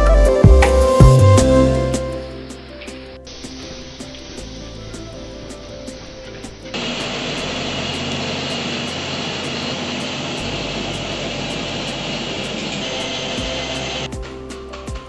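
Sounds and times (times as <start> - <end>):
music with steady beat: 0.0 - 15.0
loud rushing noise: 2.4 - 14.2.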